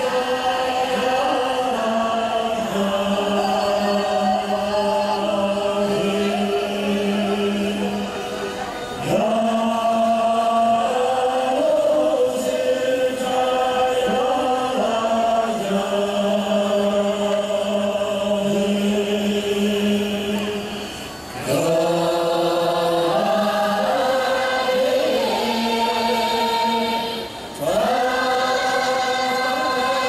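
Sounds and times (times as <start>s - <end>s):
choir singing long notes: 0.0s - 30.0s.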